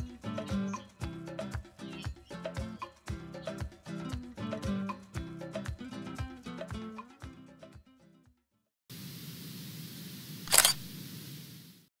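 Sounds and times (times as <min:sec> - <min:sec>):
background music: 0:00.0 - 0:07.9
steady hiss: 0:08.9 - 0:11.9.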